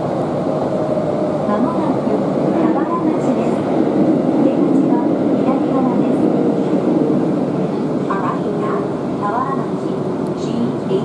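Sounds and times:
subway car wheels rumbling on rail: 0.0s - 11.0s.

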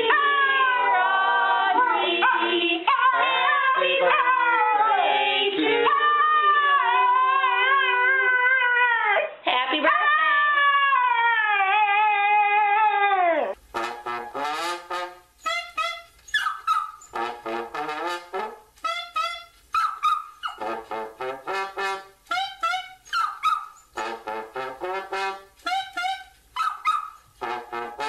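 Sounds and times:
small dog howling: 5.8s - 13.6s
saxophone and trombone music: 13.6s - 16.2s, 17.1s - 19.7s, 20.6s - 23.0s, 23.9s - 26.5s, 27.4s - 28.0s.

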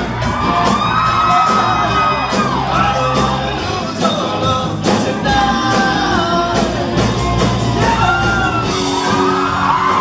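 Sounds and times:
live rock band: 0.0s - 10.0s.

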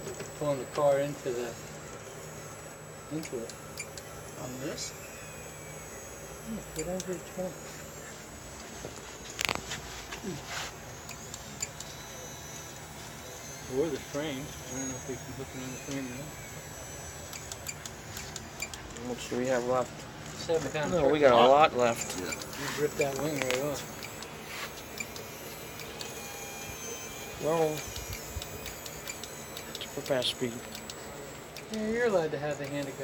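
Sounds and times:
electric winch reeling in: 0.0s - 33.0s.

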